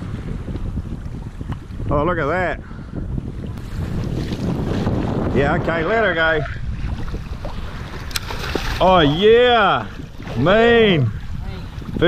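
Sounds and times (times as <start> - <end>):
wind buffeting microphone: 0.0 - 12.0
water slapping against hull: 3.4 - 5.8, 6.7 - 12.0.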